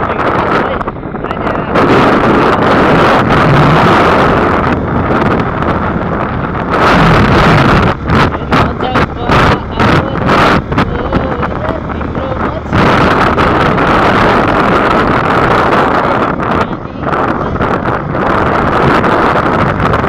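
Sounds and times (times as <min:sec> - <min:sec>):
motorcycle engine running: 0:00.0 - 0:20.0
wind rushing over microphone: 0:00.0 - 0:20.0.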